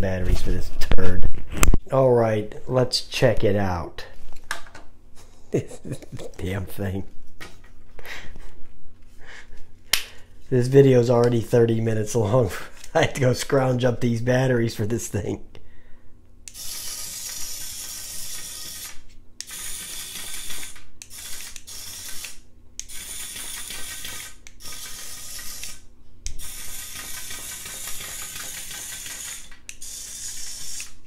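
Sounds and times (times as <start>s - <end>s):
toy gear motor rattling: 16.5s - 25.8s, 26.4s - 31.0s.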